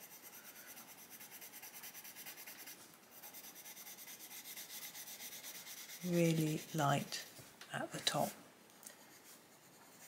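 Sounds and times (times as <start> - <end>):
coloured pencil rubbing on paper: 0.0 - 7.3, 9.0 - 10.0.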